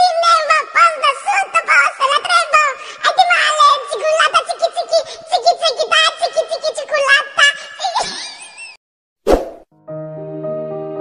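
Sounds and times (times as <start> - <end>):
baby laughing: 7.8 - 8.7
sharp pop sound effect: 9.3 - 9.7.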